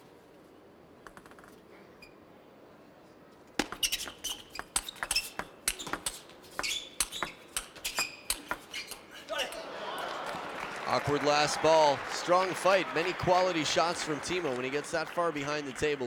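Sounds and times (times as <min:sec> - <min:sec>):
crowd noise: 0:09.2 - 0:16.0.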